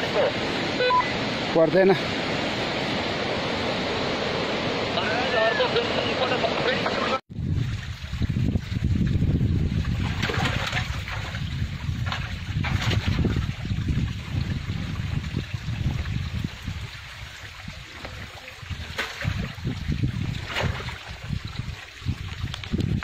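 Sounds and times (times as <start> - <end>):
water trickling in a rocky stream: 7.3 - 23.0
wind rumble on microphone: 7.3 - 23.0.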